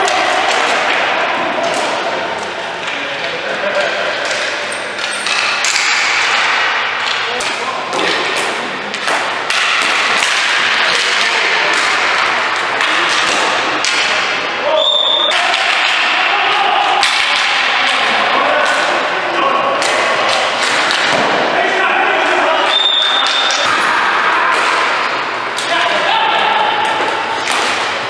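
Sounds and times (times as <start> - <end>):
players shouting: 0.0 - 4.2, 6.2 - 28.0
hockey sticks clacking: 0.0 - 28.0.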